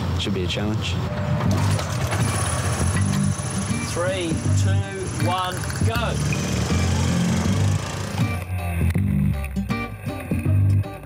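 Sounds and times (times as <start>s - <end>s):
motorcycle engine kick-started: 1.4s - 8.4s.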